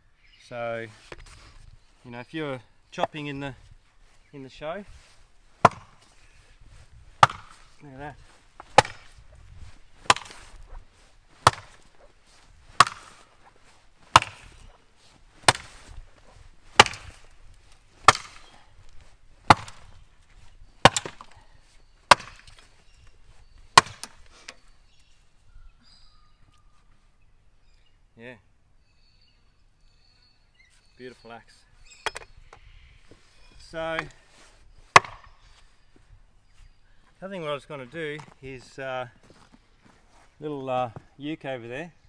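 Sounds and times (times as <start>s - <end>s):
axe chopping wood: 5.6s - 6.1s, 7.1s - 7.8s, 8.6s - 9.2s, 10.0s - 10.7s, 11.4s - 12.0s, 12.7s - 13.3s, 14.0s - 14.8s, 15.4s - 15.9s, 16.7s - 17.3s, 18.0s - 18.6s, 19.4s - 20.0s, 20.8s - 21.4s, 22.1s - 22.7s, 23.8s - 24.2s, 34.9s - 35.4s.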